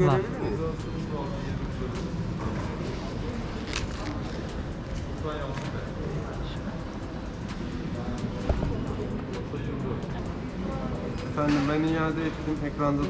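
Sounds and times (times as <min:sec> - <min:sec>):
faint indistinct voices: 0:00.0 - 0:13.0
indoor hall hum: 0:00.0 - 0:13.0.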